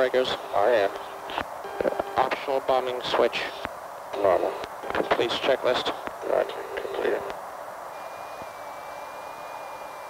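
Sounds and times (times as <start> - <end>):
radio channel hiss: 0.0 - 10.0.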